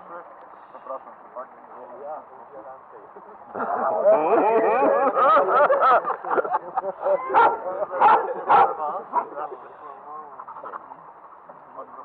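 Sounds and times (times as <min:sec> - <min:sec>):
people talking low: 0:00.0 - 0:12.0
dog barking: 0:07.3 - 0:09.4.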